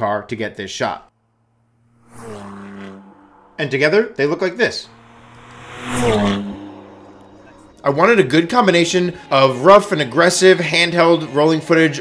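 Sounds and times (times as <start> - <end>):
car driving past: 1.2 - 11.0.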